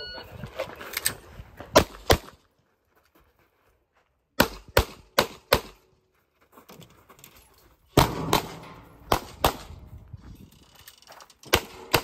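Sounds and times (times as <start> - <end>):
shot timer beep: 0.0 - 0.3
pistol shots: 8.0 - 9.8.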